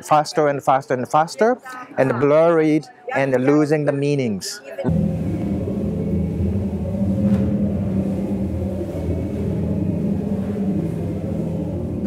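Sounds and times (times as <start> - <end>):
thin high tone: 4.8 - 12.0
drone of low sine tones: 4.9 - 12.0.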